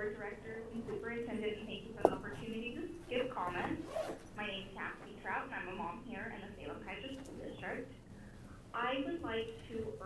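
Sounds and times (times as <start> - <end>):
woman talking over call line: 0.0 - 3.8, 4.4 - 8.0, 8.7 - 10.0.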